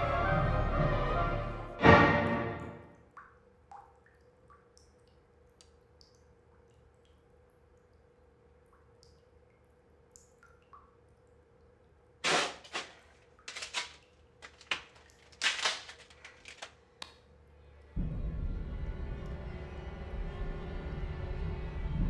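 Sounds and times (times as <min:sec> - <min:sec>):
low droning music: 0:00.0 - 0:03.2, 0:17.3 - 0:22.0.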